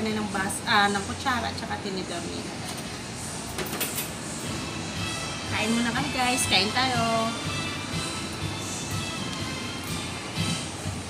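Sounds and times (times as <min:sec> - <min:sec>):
restaurant hubbub: 0:00.0 - 0:11.0
cutlery clinking on a plate: 0:03.5 - 0:04.2.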